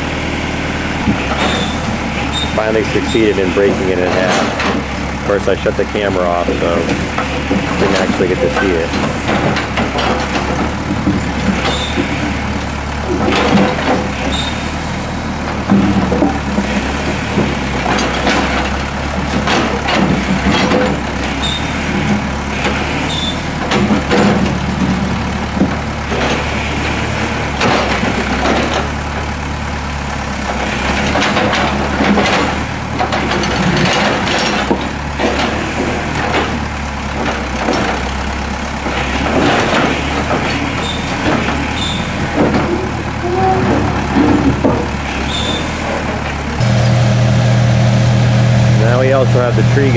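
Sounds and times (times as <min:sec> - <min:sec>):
backhoe engine running: 0:00.0 - 0:49.9
bucket scraping concrete chunks: 0:02.4 - 0:10.7.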